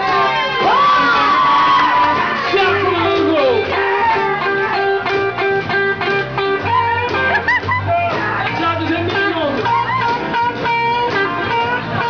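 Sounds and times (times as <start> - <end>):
upright bass: 0.0 - 12.0
guitar picking repeated note: 2.0 - 12.0.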